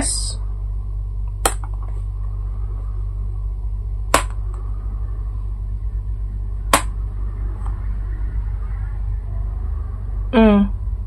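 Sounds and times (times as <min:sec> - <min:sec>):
steady low hum: 0:00.0 - 0:11.0
object tapping on cards: 0:01.4 - 0:02.0, 0:04.1 - 0:04.4, 0:06.7 - 0:06.9.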